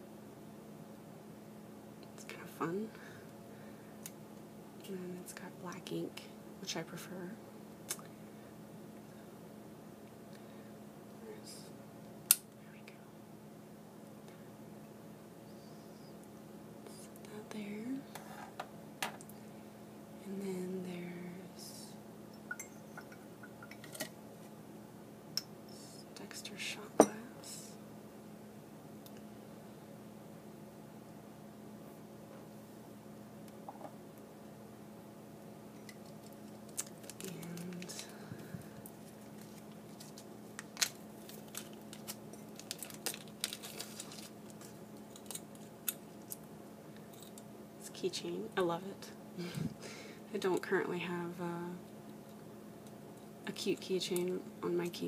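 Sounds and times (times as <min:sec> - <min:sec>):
plastic bag crinkling: 0:36.0 - 0:38.2, 0:38.8 - 0:45.7.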